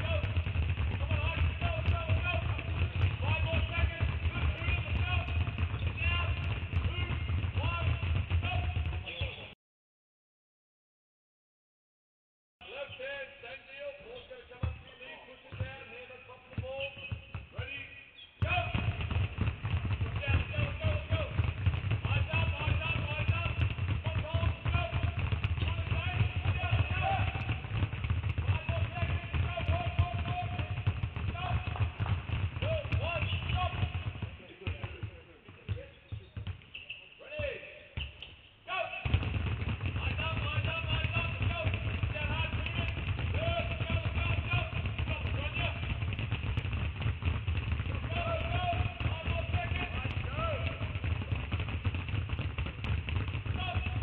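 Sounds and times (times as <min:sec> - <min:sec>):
basketballs dribbling on hardwood: 0:00.0 - 0:09.6, 0:14.6 - 0:14.9, 0:15.5 - 0:54.0.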